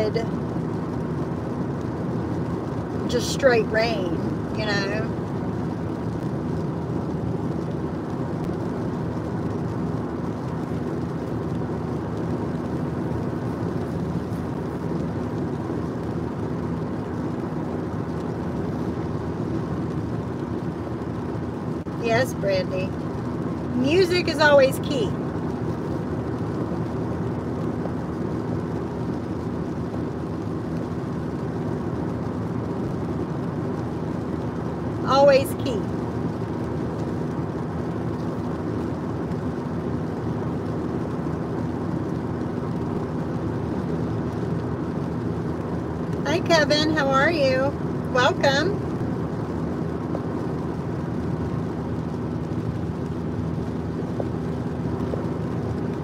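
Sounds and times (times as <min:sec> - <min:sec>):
car road and engine noise: 0:00.0 - 0:56.0.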